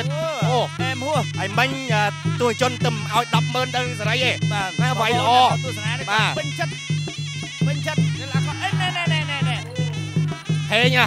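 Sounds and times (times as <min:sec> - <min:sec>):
buzzy reed pipe melody: 0:00.0 - 0:11.0
steady repeating drum beat: 0:00.0 - 0:11.0.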